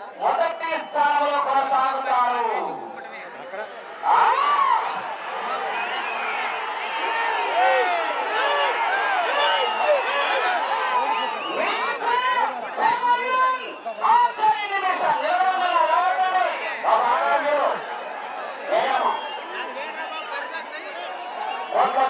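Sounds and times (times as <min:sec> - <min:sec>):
crowd of men shouting: 0:03.7 - 0:22.0.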